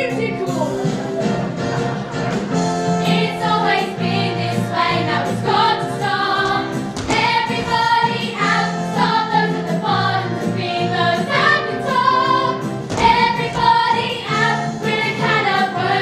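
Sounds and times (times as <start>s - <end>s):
instrumental accompaniment: 0.0s - 16.0s
chorus of girls singing: 3.0s - 16.0s.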